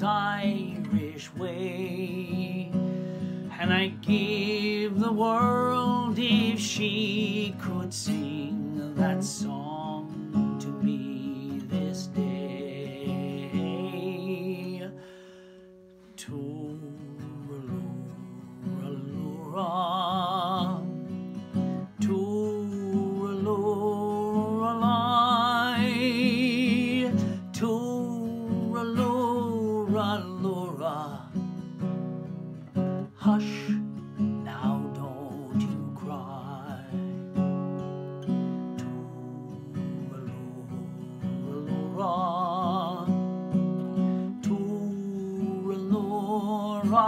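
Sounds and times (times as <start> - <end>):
man singing lullaby: 0.0 - 15.3, 16.0 - 31.6, 32.7 - 47.0
strummed acoustic guitar: 0.0 - 47.0.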